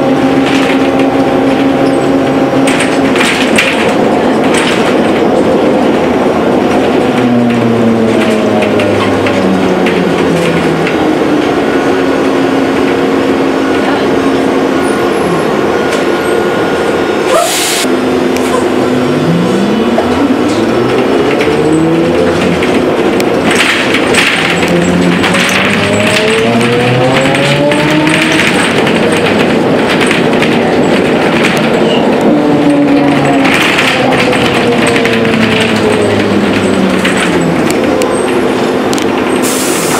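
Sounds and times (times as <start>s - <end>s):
rattle and road noise: 0.0s - 17.0s, 18.1s - 39.9s
electric traction drive whining: 0.0s - 39.9s.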